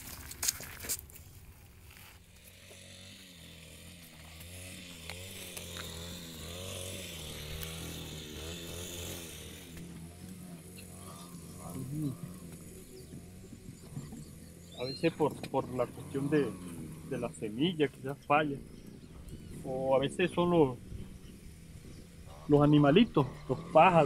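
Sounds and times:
low motor hum: 0:00.0 - 0:24.0.

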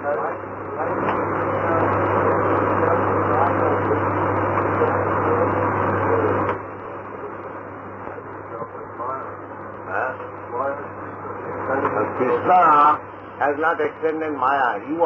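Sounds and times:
steady tape hum: 0:00.0 - 0:15.0.

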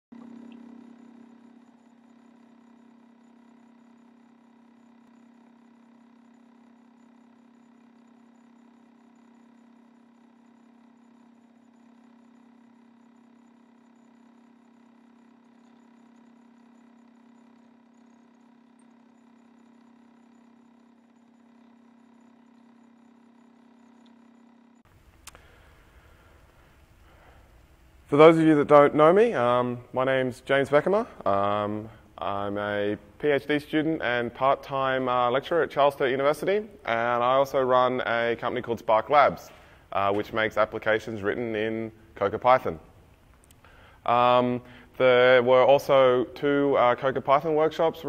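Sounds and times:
faint electrical hum: 0:00.2 - 0:48.0.

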